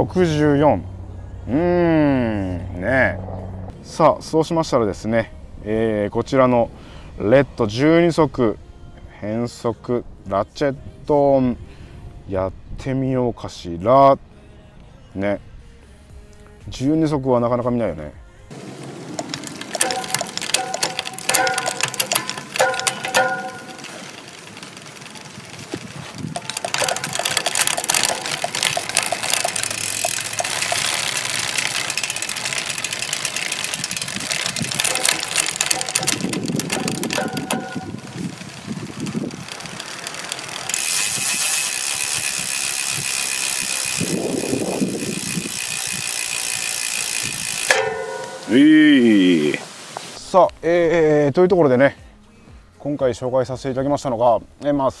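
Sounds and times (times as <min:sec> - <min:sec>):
electronic derailleur shifting whir: 0:18.5 - 0:48.6
bike freewheel ticking: 0:19.1 - 0:48.9
bike chain running over cassette: 0:19.2 - 0:48.6.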